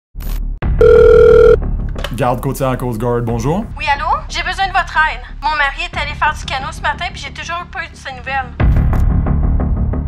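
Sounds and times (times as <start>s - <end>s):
telephone ringing: 0.8s - 1.6s.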